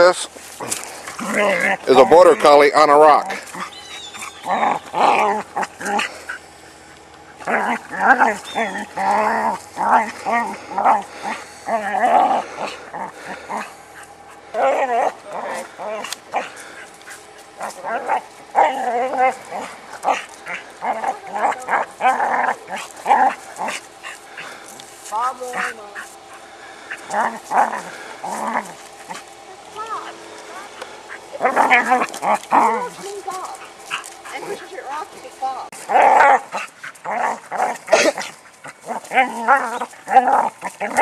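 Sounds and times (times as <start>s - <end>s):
dog barking and whining: 0.7s - 6.4s, 7.3s - 13.7s, 14.3s - 24.6s, 27.0s - 35.0s, 35.7s - 41.0s
dog whining and yipping: 3.3s - 6.1s, 7.8s - 9.5s.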